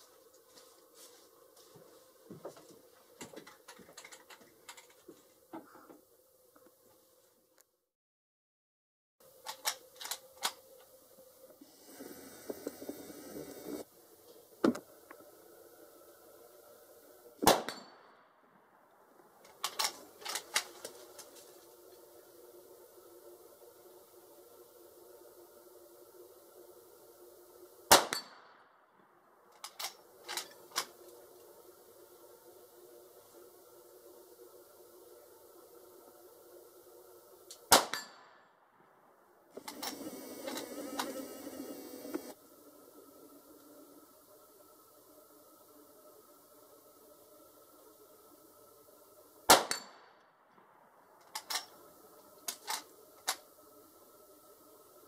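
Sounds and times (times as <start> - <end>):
clattering handling noise: 2.4 - 5.8
rifle gunshots: 17.4 - 17.9.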